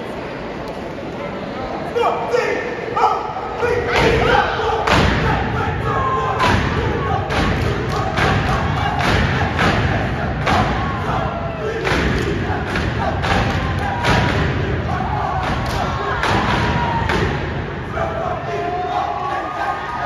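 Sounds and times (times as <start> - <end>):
people shouting: 2.0 - 20.0
stamping and clapping in unison: 6.4 - 11.2, 11.8 - 17.4.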